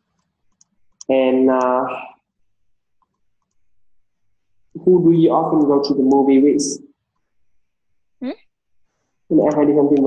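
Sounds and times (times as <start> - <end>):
computer mouse clicks: 0.0 - 1.7, 3.0 - 3.7.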